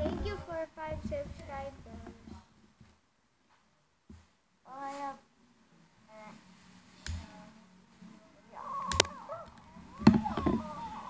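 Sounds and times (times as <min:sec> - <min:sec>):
child's wavering vocal sound: 0:08.5 - 0:11.0.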